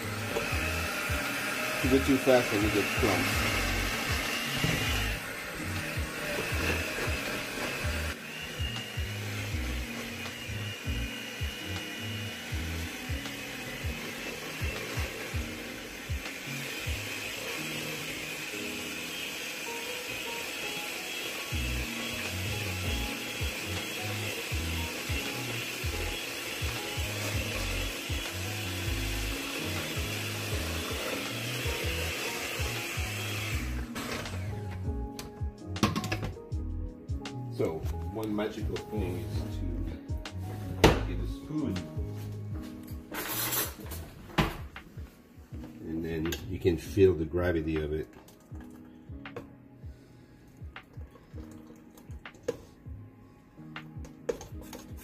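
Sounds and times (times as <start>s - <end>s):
electric mixer whisking batter: 0.0s - 34.8s.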